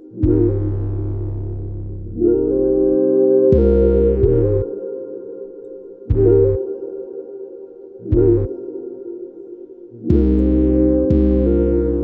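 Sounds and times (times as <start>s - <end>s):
deep synth bass notes: 0.0s - 4.7s, 6.1s - 6.6s, 8.0s - 8.6s, 10.0s - 12.0s.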